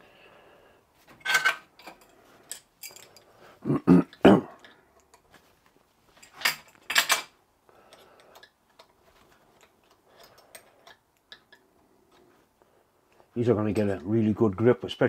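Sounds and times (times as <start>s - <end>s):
person clearing throat: 3.6s - 4.7s.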